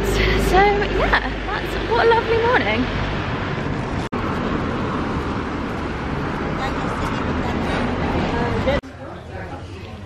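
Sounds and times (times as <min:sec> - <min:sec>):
passing vehicles: 0:00.0 - 0:10.0.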